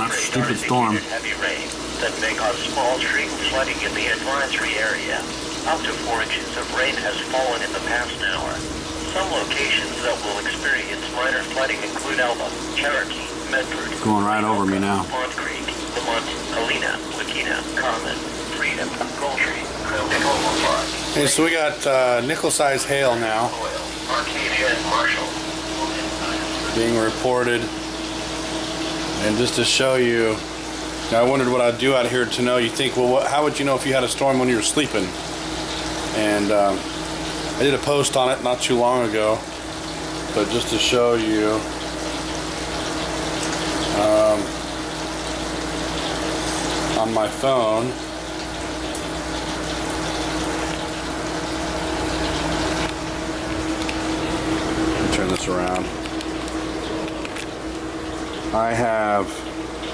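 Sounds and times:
radio voice reading: 0.0 - 27.7
steady electrical hum: 0.0 - 59.9
heavy rain: 0.3 - 14.0
low hum: 2.4 - 14.0.

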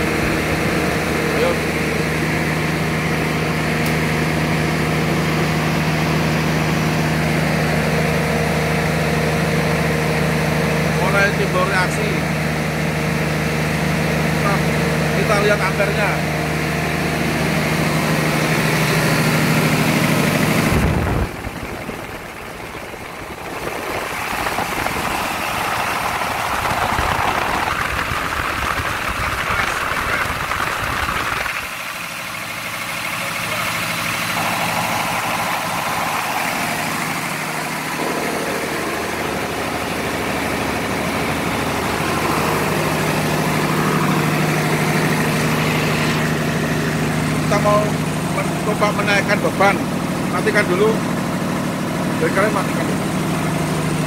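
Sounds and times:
diesel generator engine hum: 0.0 - 54.0.

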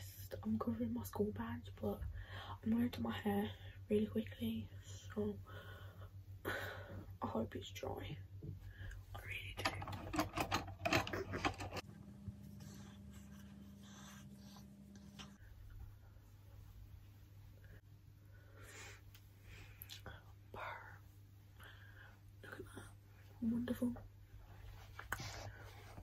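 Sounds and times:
low hum: 0.0 - 24.9
faint whispers: 18.6 - 24.0.

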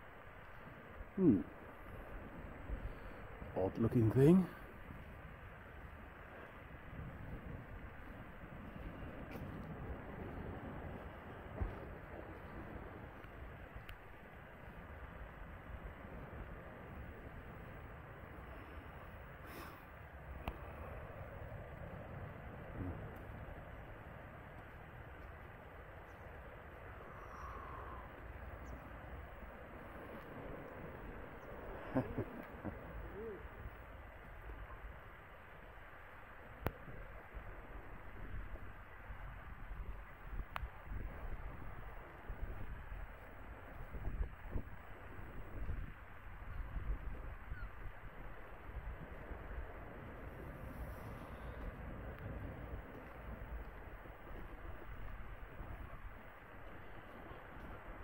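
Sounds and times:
wind buffeting microphone: 0.0 - 19.3, 20.3 - 58.0
faint bird calls: 26.0 - 29.0, 31.3 - 34.9, 47.4 - 48.0, 50.7 - 51.8
person laughing: 31.8 - 33.5.

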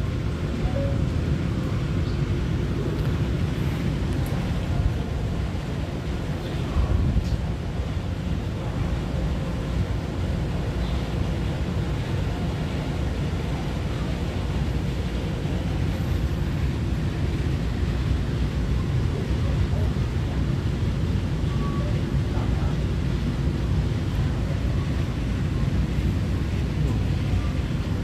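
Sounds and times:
wind buffeting microphone: 0.0 - 21.4
train low rumble: 0.0 - 28.0.

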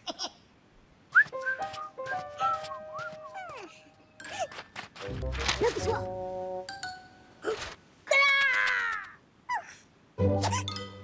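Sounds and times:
held whistle-like notes: 1.1 - 3.4.

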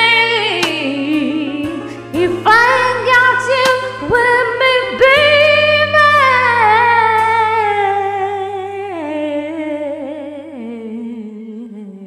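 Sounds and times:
karaoke backing track chord: 0.0 - 11.2.

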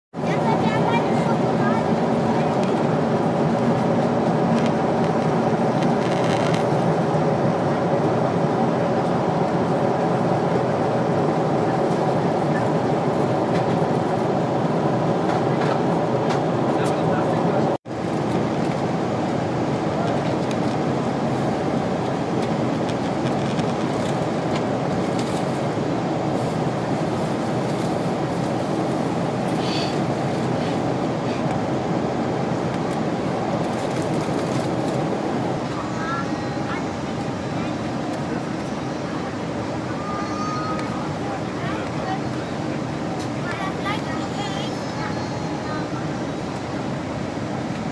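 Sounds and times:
jet engine drone: 0.2 - 47.9.

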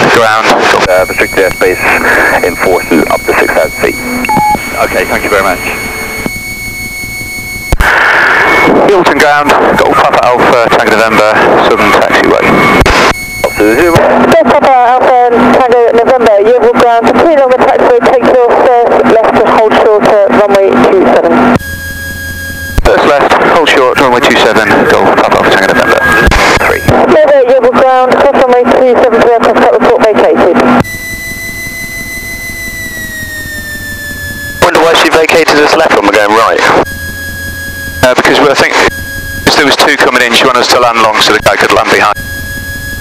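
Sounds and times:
voices over aircraft radio: 0.0 - 6.4, 8.5 - 12.8, 13.4 - 21.6, 22.8 - 30.8, 34.6 - 36.8, 38.0 - 42.2
aircraft piston engine hum: 0.8 - 7.8, 30.8 - 43.0.

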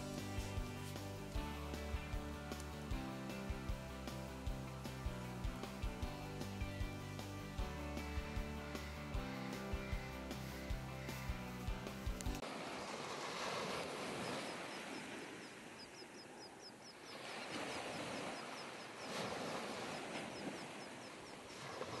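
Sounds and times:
small waves washing on sand: 12.3 - 16.0, 16.9 - 22.0
bird chirping: 14.2 - 19.2, 20.0 - 21.8.

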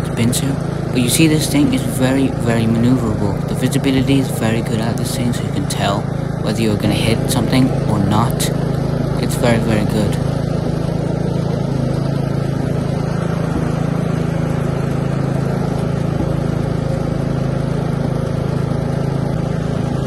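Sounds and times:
ride-on mower engine running: 0.0 - 20.0.

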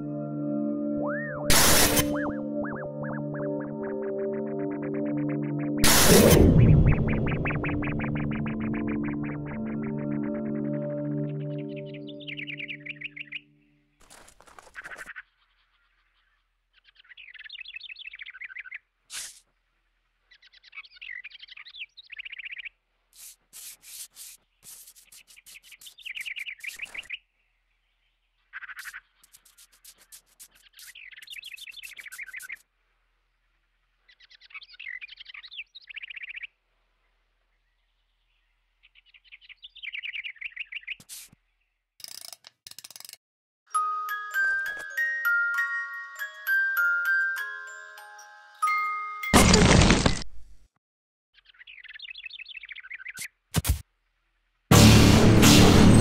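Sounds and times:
short sharp noise: 1.5 - 2.3, 5.8 - 7.1, 54.7 - 56.0
small birds chirping: 6.8 - 42.0, 51.3 - 53.5
rustling rubbing noises: 23.1 - 27.1, 28.8 - 32.6, 41.0 - 41.4
glockenspiel-like music: 43.7 - 49.4.

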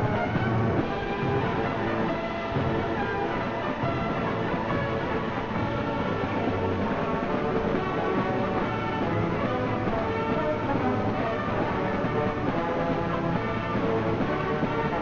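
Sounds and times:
symphonic band playing chords: 0.0 - 15.0.

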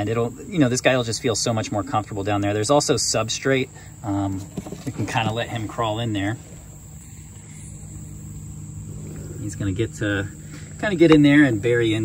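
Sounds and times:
crickets chirping: 0.0 - 12.0
low steady hum: 0.0 - 12.0.

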